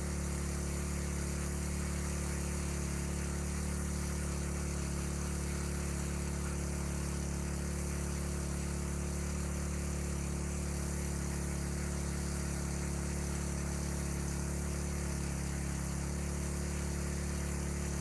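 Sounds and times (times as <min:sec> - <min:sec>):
water pump engine running: 0:00.0 - 0:18.0.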